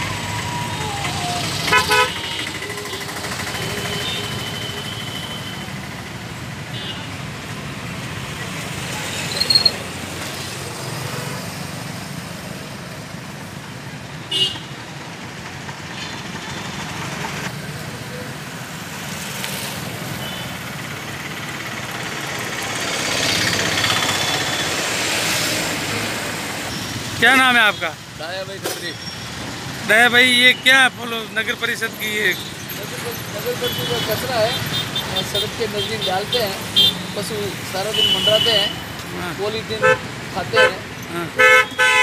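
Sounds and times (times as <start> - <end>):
road traffic noise: 0.0 - 42.0.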